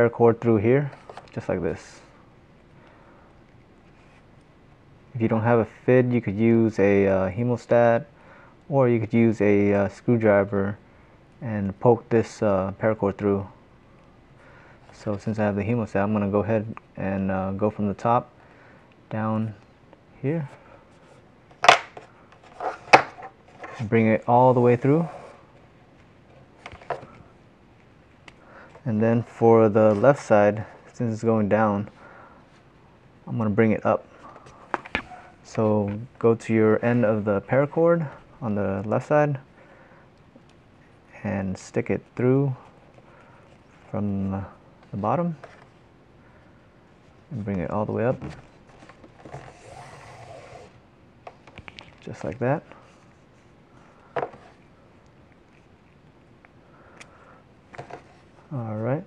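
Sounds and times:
cord sliding against cord: 22.0s - 24.0s, 24.6s - 25.5s, 48.7s - 50.8s.

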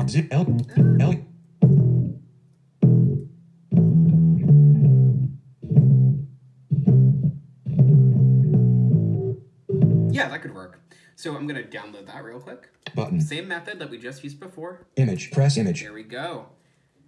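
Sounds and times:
electric bass line: 0.0s - 2.2s, 2.8s - 10.2s, 12.9s - 13.3s.

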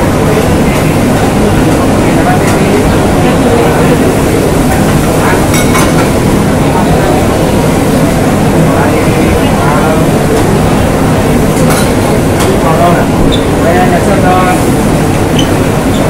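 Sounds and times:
gas burners and exhaust hood rumble: 0.0s - 16.0s
indistinct voices: 0.0s - 16.0s.

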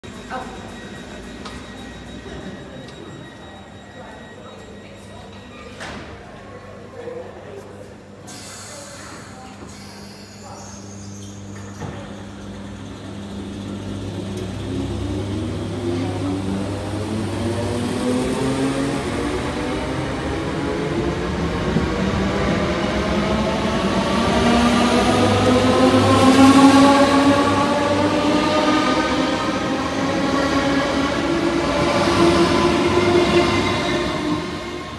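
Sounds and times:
train wheel and running noise: 0.0s - 6.5s, 8.1s - 34.9s
train traction motors whining: 9.8s - 34.9s.

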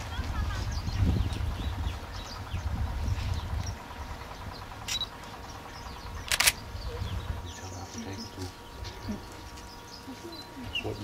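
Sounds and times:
small birds chirping: 0.0s - 11.0s
sharp clicks: 6.2s - 6.6s.

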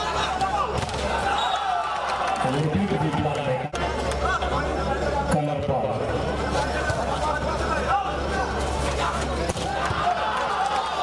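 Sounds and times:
spectators shouting: 0.0s - 5.2s, 6.6s - 11.0s.

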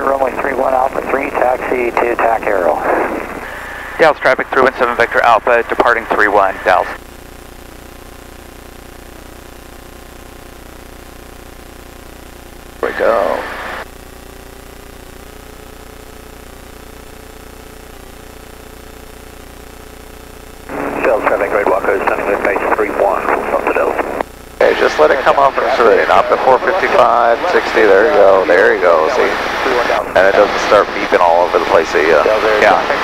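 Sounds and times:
radio voice transmissions: 0.0s - 7.0s, 12.8s - 13.8s, 20.7s - 33.0s.

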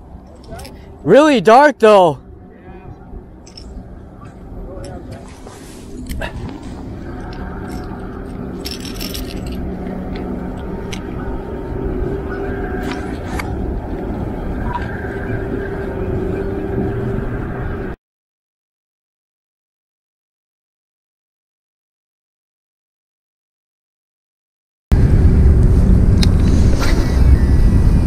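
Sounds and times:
engine droning: 0.0s - 18.0s, 24.9s - 28.0s.

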